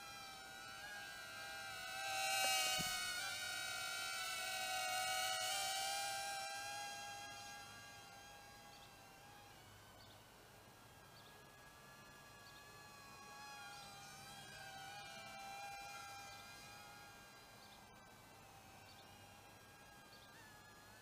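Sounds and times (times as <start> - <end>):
small drone motors whining: 0.0 - 21.0.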